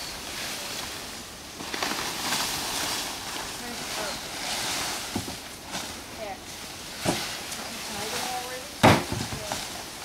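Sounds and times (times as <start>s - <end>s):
dry palm fronds rustling: 0.0s - 10.0s.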